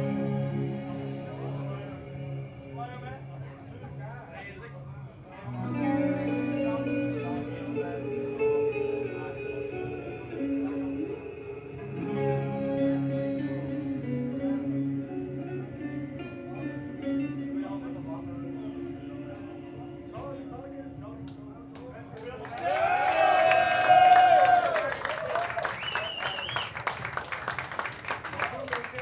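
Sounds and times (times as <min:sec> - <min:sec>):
two electric guitars playing melody: 0:00.0 - 0:04.0, 0:04.8 - 0:22.0.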